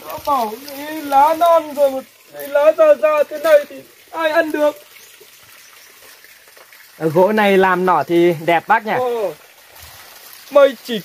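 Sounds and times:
faint outdoor hiss: 0:00.0 - 0:11.0.

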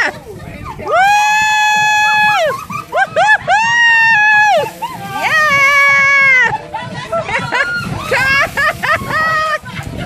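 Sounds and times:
people screaming shrilly: 0:00.7 - 0:06.6, 0:07.2 - 0:09.6.

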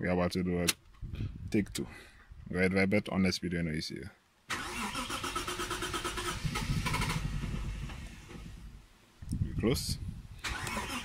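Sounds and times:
starter cranking engine: 0:04.5 - 0:08.7, 0:10.4 - 0:11.0
engine sputtering: 0:04.5 - 0:08.8, 0:10.4 - 0:11.0.

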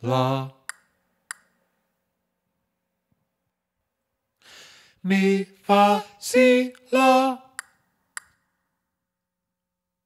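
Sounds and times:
short in-breath: 0:04.4 - 0:05.0.

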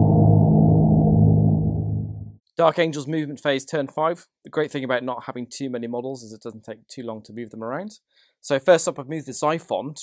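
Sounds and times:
deep low drone: 0:00.0 - 0:02.4.

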